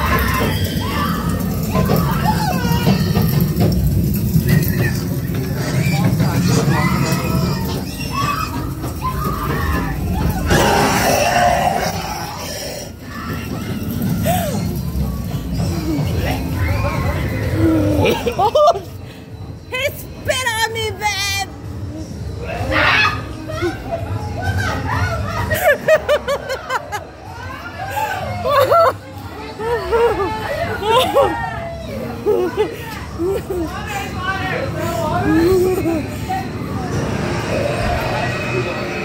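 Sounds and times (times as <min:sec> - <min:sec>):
indistinct voices: 0:00.0 - 0:39.0.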